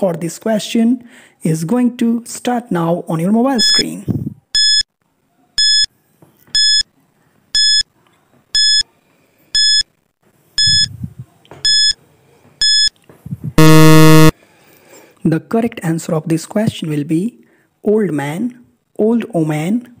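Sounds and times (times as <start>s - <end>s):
short electronic beeps: 10.6s - 10.9s, 11.6s - 12.0s, 12.6s - 12.9s, 13.6s - 14.3s
loud buzzer: 13.6s - 14.3s.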